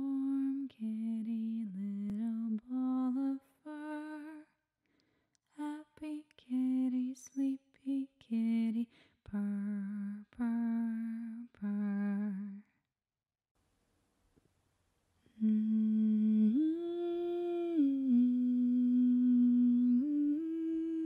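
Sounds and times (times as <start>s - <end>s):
woman humming a melody: 15.3s - 21.0s.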